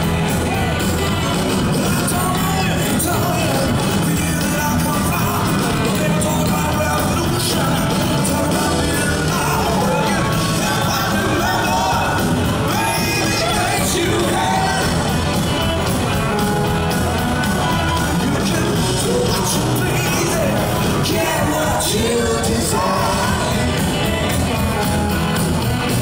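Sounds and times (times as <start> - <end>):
drums: 0.0 - 26.0
electric guitars: 0.0 - 26.0
man singing lead: 0.0 - 26.0.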